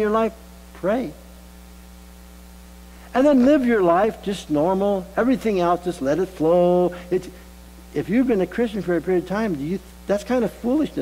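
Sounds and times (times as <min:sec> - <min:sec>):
man speaking: 0:00.0 - 0:01.3, 0:03.1 - 0:11.0
electrical mains hum: 0:00.0 - 0:11.0
faint buzz of tones: 0:00.0 - 0:11.0.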